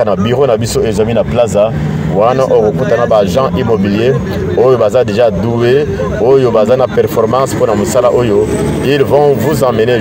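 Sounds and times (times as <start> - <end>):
man narrating: 0.0 - 10.0.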